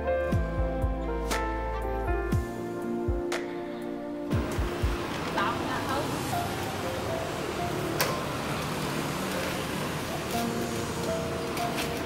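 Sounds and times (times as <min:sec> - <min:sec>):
steady background noise: 0:04.0 - 0:12.0.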